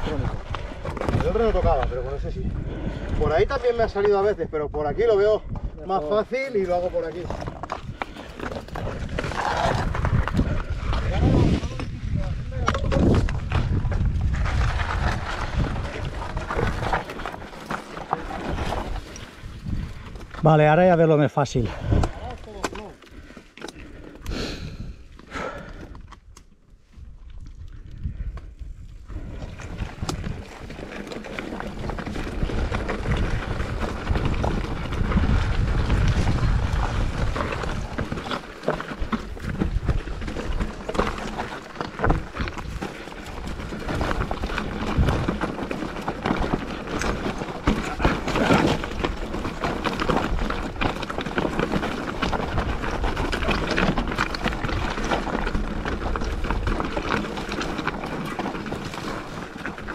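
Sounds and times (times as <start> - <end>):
tyres clattering on loose stones: 0.0 - 2.1, 5.9 - 24.2, 29.2 - 59.9
wind buffeting microphone: 0.0 - 17.0, 18.5 - 20.4, 27.0 - 41.3
bike rattling over rocks: 0.0 - 59.9.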